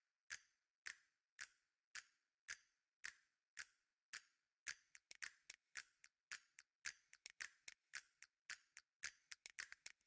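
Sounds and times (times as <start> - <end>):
faint sharp clicks: 0.3 - 10.0.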